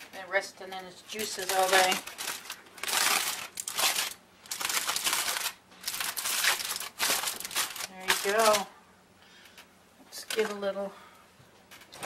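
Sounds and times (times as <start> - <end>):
aluminum foil crinkling: 1.0 - 8.7, 9.6 - 10.6.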